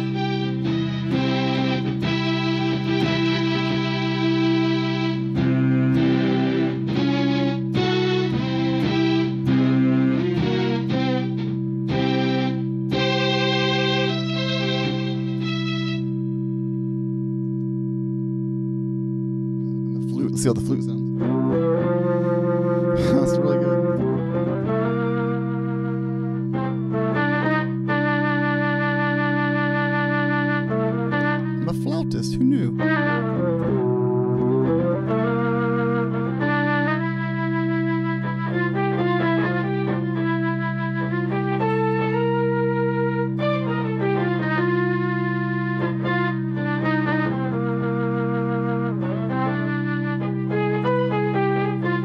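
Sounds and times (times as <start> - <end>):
organ-like electric guitar chords: 0.0 - 52.0
held low notes: 19.6 - 24.9, 31.6 - 36.5.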